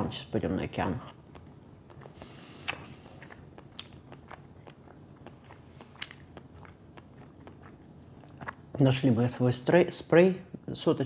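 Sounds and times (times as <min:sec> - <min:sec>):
person chewing food: 0:01.0 - 0:08.8
mouth clicks and smacks: 0:01.0 - 0:09.0.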